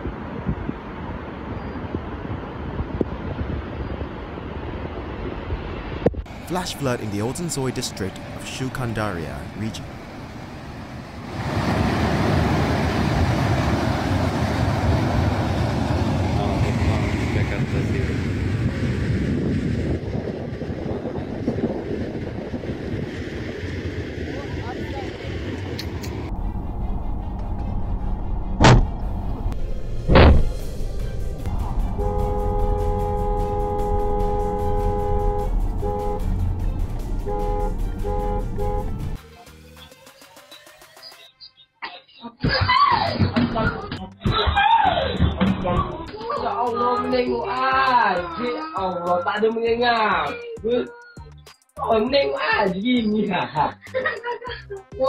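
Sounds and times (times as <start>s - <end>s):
muddy water and debris roaring: 9.6s - 19.2s
low rumble: 12.1s - 39.2s
sharp knocks: 30.1s - 30.6s
vehicle horn honking: 31.5s - 39.2s.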